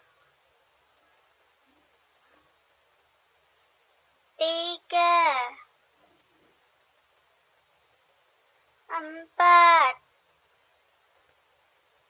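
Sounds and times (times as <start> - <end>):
high-pitched voice calling out: 4.4 - 5.6, 8.9 - 10.0.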